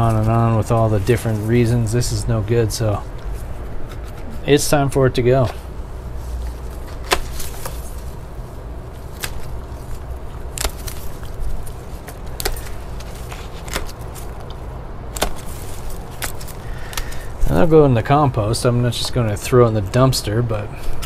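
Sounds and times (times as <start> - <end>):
steady low rumble: 0.0 - 21.0
pruning shears snipping stems: 9.1 - 17.3.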